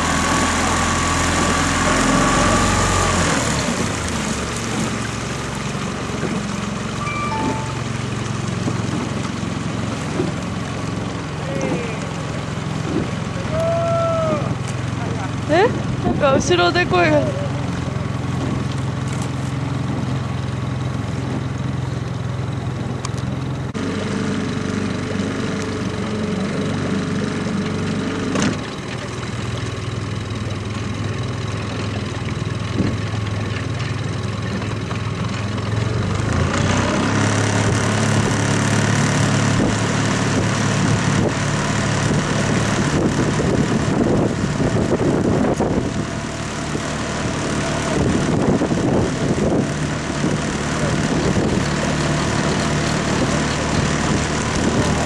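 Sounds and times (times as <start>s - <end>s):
outboard motor running: 0.0s - 55.0s
water noise: 0.0s - 55.0s
wind noise: 39.5s - 46.2s, 47.2s - 51.9s.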